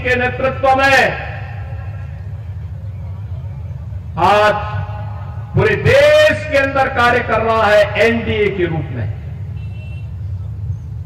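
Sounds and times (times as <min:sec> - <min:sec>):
low background rumble: 0:00.0 - 0:11.0.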